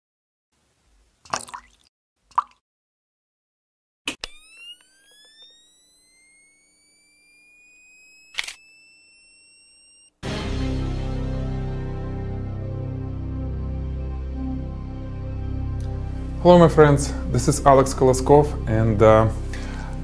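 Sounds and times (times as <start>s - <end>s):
camera flash charging whine: 4.1s - 10.2s
sharp click: 8.3s - 8.6s.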